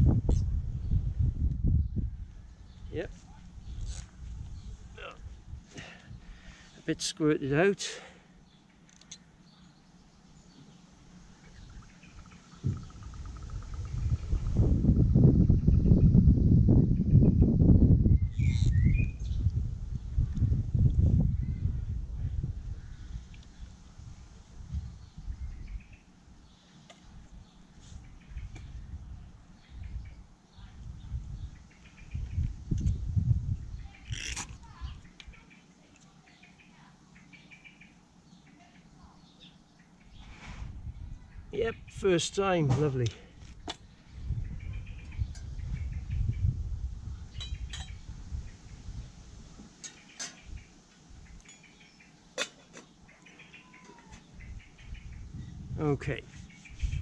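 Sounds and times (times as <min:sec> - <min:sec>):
low rumbling noise: 0:11.3 - 0:25.8
bird chirps: 0:18.2 - 0:19.5, 0:33.7 - 0:40.4, 0:49.8 - 0:52.2, 0:52.8 - 0:55.6.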